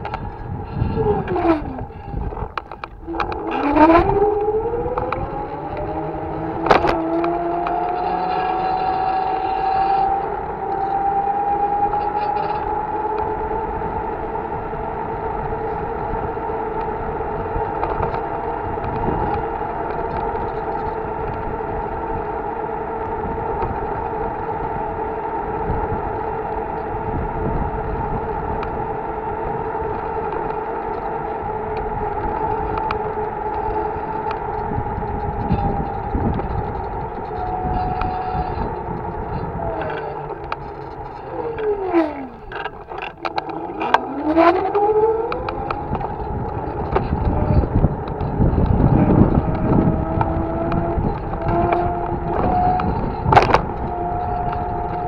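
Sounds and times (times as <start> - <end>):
road and wind rumble: 0.0 - 55.0
vehicle motor whining: 0.0 - 55.0.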